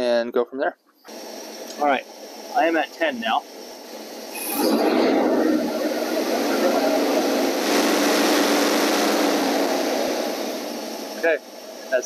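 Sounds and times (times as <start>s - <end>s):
engine revving: 4.0s - 11.9s.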